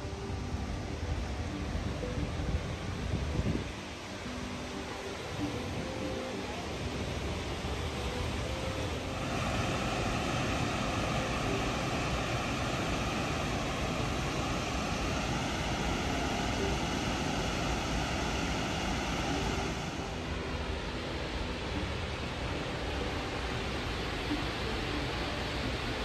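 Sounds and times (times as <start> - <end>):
waterfall rushing: 0.0 - 26.0.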